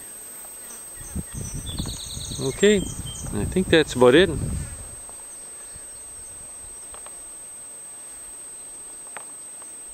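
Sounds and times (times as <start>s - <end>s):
background hiss: 0.0s - 9.9s.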